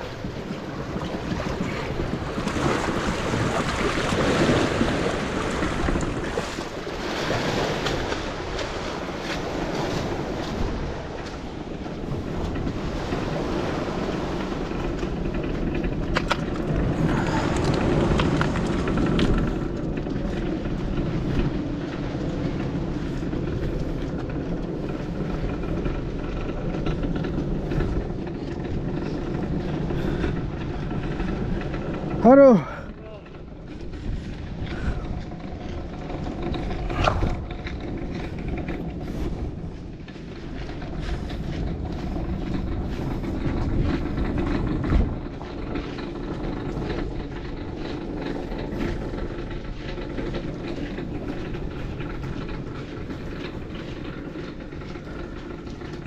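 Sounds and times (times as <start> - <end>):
water splashing: 0.0 - 14.7
boat hauled over concrete: 0.0 - 56.0
wind buffeting microphone: 0.0 - 56.0.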